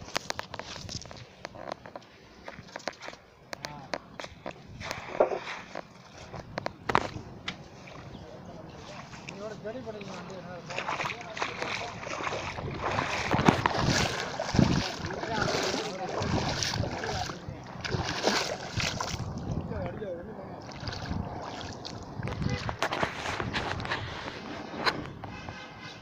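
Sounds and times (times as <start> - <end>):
footsteps splashing through water: 0.0 - 1.5, 4.2 - 19.7, 20.6 - 23.9.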